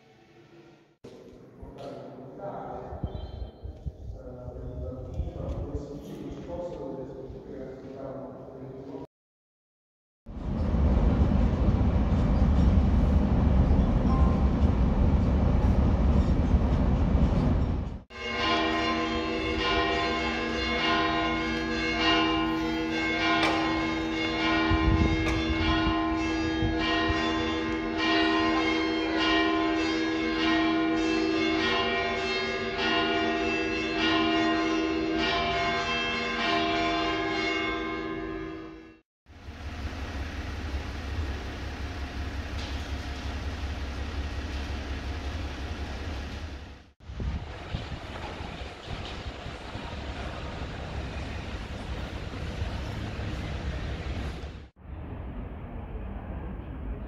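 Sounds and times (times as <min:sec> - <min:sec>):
steady low rumble: 0:10.3 - 0:18.0, 0:39.4 - 0:57.0
church bells pealing: 0:18.1 - 0:39.0.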